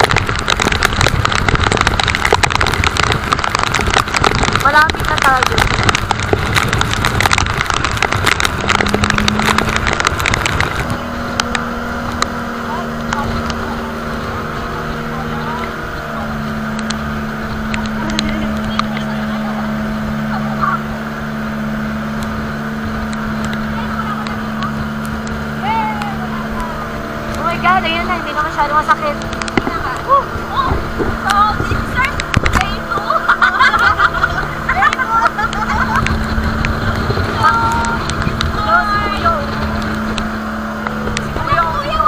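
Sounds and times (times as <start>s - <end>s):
boat engine droning: 0.0s - 42.0s
heavy rain: 0.0s - 42.0s
wind: 0.0s - 42.0s
voices: 4.6s - 5.8s, 8.4s - 42.0s.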